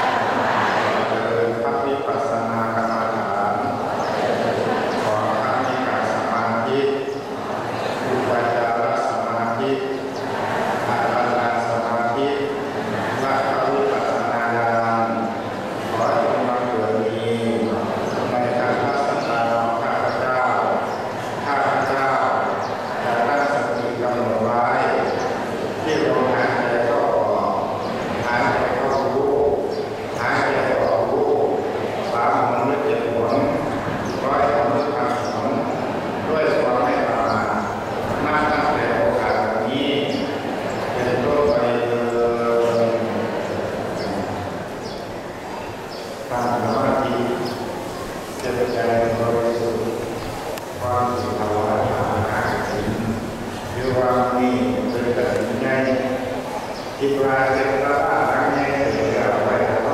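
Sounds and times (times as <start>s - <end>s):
group chanting in monotone: 0.0s - 6.3s
voices chanting: 0.0s - 59.9s.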